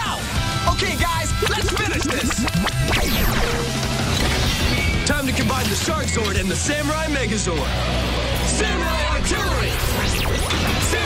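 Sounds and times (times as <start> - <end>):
action soundtrack music: 0.0 - 11.0.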